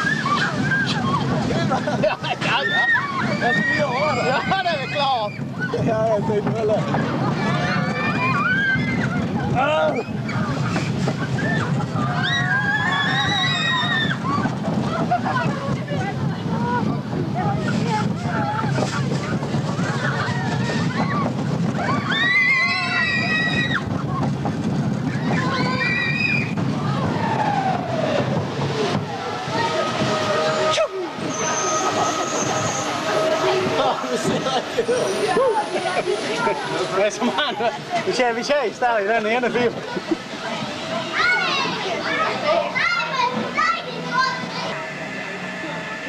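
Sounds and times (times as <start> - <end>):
riders yelling and shrieking: 0.0 - 6.0, 6.8 - 15.4, 18.4 - 24.0, 25.0 - 37.2
roller coaster rumbling on track: 0.0 - 46.0
voices: 0.0 - 46.0.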